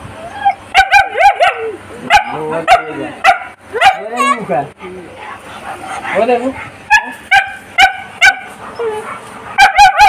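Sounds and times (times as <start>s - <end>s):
dog barking: 0.8s - 4.1s, 6.9s - 10.0s.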